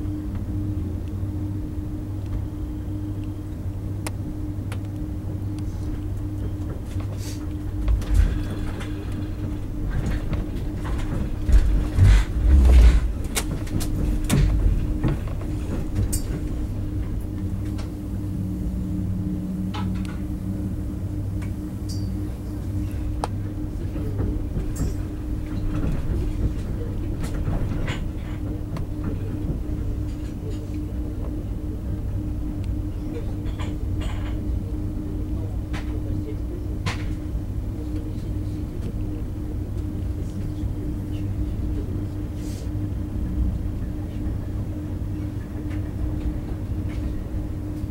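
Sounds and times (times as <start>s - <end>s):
train rumbling inside carriage: 0.0s - 47.9s.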